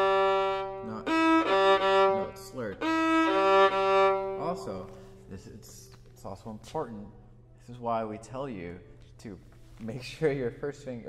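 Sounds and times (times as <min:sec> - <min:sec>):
violin long bowed notes: 0:00.0 - 0:05.5.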